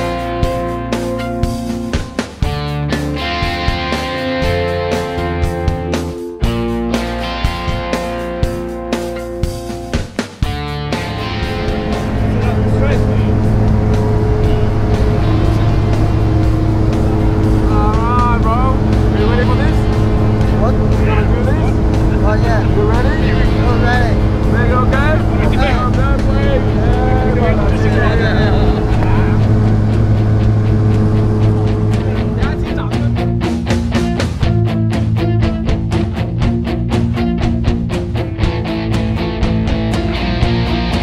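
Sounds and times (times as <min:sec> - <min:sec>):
aircraft engine drone: 0:10.4 - 0:34.6
person's voice: 0:20.6 - 0:29.5, 0:31.9 - 0:33.2.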